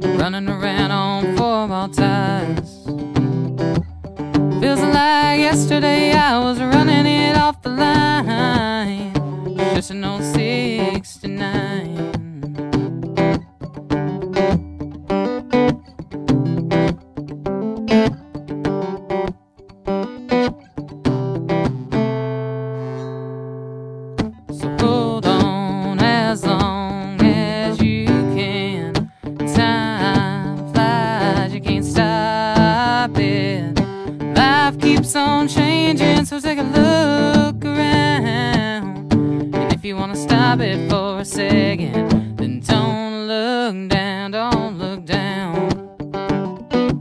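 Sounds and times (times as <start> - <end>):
acoustic guitar strumming: 0.0 - 47.0.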